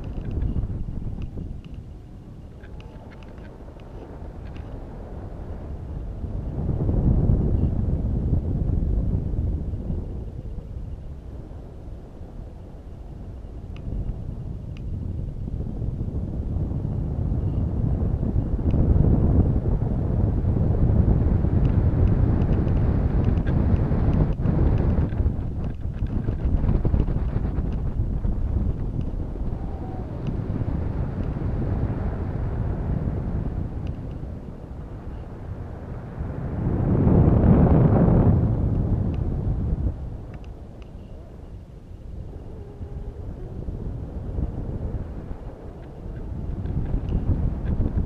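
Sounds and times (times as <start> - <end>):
wind rushing over microphone: 0.0 - 48.0.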